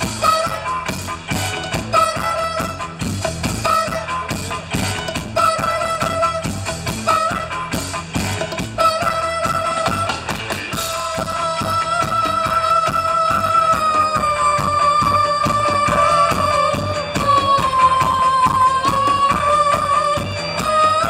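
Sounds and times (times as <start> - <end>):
live band playing: 0.0 - 21.0.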